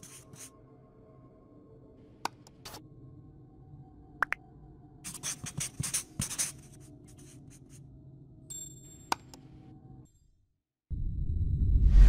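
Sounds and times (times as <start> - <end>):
pen scratching across paper: 5.1 - 7.4.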